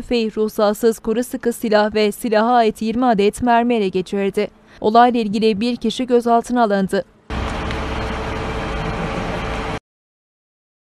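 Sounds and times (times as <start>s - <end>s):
diesel truck engine idling: 7.3s - 9.8s.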